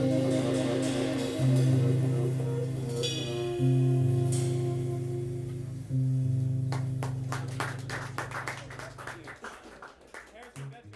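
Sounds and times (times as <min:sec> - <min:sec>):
audience clapping: 0:06.6 - 0:10.9.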